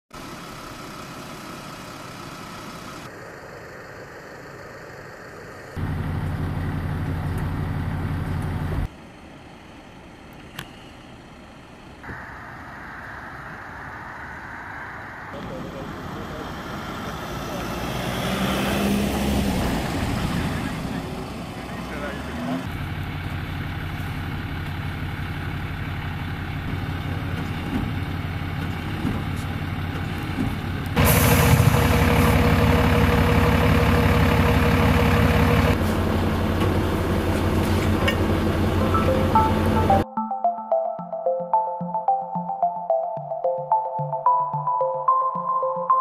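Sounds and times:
large vehicle engine running: 0.2s - 40.0s
steady whine: 12.0s - 16.5s.

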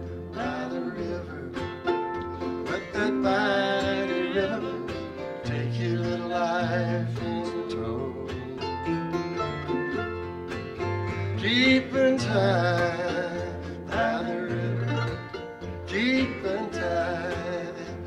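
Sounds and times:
acoustic guitar: 0.0s - 18.0s
mandolin melody: 0.0s - 18.0s.

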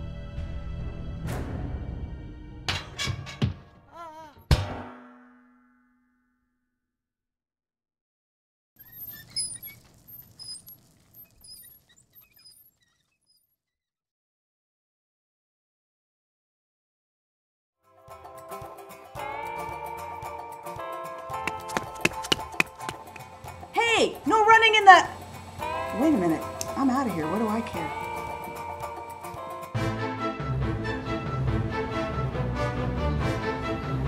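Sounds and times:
footsteps running on hard floor: 21.4s - 23.3s
soft background music: 22.2s - 34.0s.

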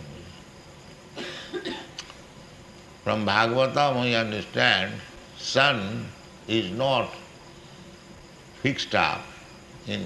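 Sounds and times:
faint steady hiss: 0.0s - 10.0s
short cough: 1.2s - 2.0s.

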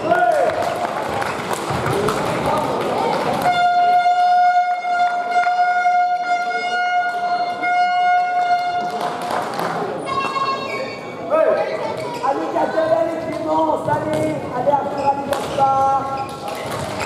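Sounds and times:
murmur of voices: 0.0s - 17.0s
steady horn-like tone: 3.5s - 8.8s.

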